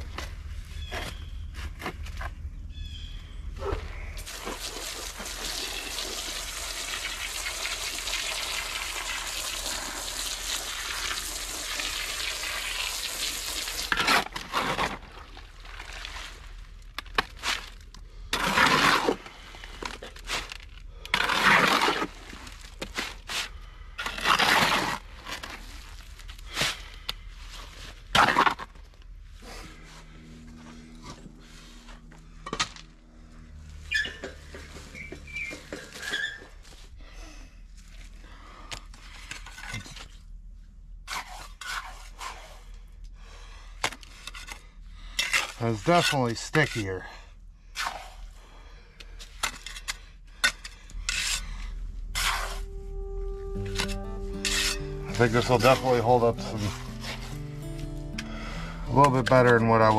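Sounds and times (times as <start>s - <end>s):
water pouring into wheelbarrow: 4.2s - 16.5s
shovel scraping wet mortar: 13.4s - 26.9s, 27.5s - 29.0s, 39.1s - 40.2s, 41.0s - 42.8s, 43.9s - 47.1s, 47.7s - 48.4s, 49.1s - 52.8s, 53.6s - 57.5s, 58.2s - 59.9s.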